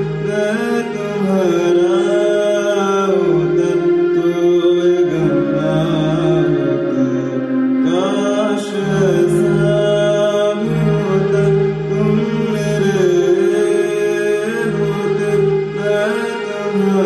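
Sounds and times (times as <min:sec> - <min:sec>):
man singing a ballad: 0:00.0 - 0:17.0.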